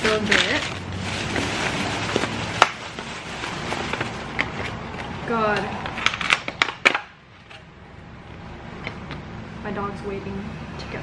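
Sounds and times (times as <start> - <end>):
paper bag rustling: 0.0 - 5.1
plastic food container crinkling: 0.0 - 5.1.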